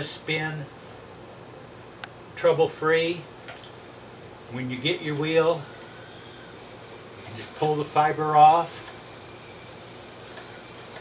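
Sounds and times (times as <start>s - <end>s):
faint high hiss: 0.0s - 11.0s.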